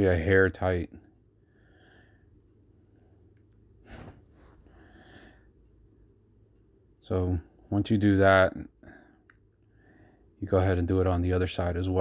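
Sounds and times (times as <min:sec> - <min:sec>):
person breathing: 0:01.4 - 0:05.7, 0:08.8 - 0:10.4.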